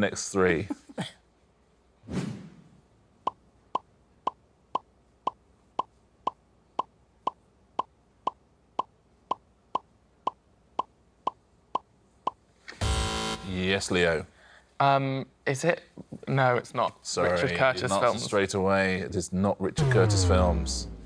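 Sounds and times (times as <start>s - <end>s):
brief swish: 2.0s - 2.7s.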